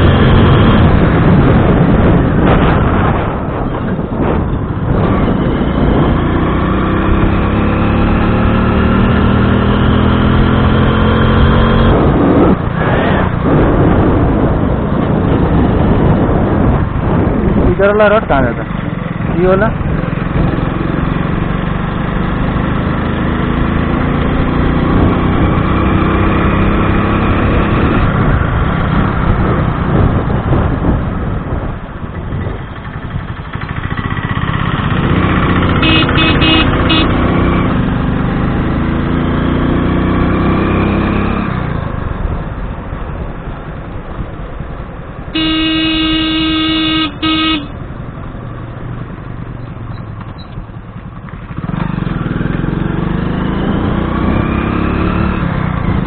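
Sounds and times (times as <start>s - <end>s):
motorcycle engine revving: 0.0s - 42.6s, 45.3s - 56.0s
horn beeping: 35.8s - 37.3s, 45.4s - 47.8s.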